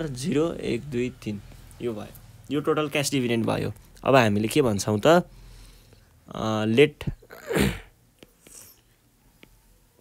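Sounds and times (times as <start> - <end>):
man sneezing: 7.1 - 8.0.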